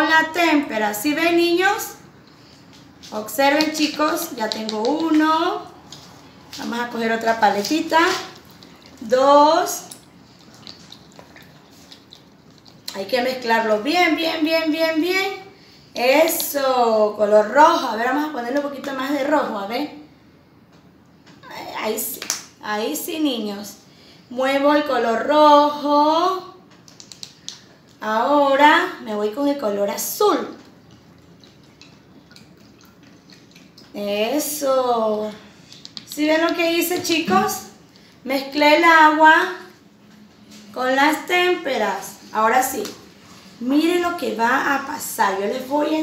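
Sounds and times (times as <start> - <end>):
stick stirring paint in plastic cup: 2.2 - 13.7, 26.7 - 28.1, 29.3 - 34.7, 35.3 - 38.2.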